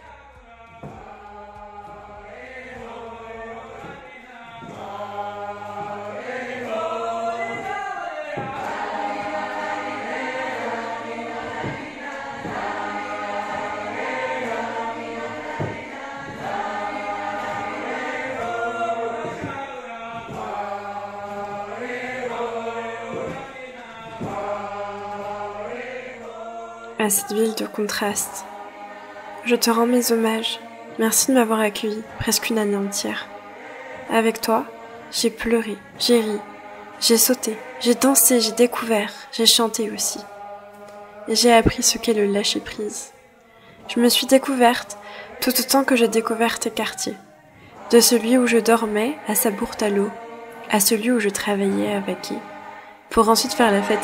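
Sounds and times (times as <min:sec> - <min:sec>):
vocal ensemble singing in harmony: 0:00.0 - 0:54.0.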